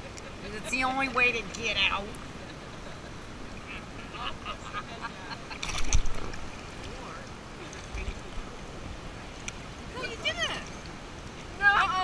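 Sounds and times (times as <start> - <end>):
seawater sloshing: 5.5 - 12.0.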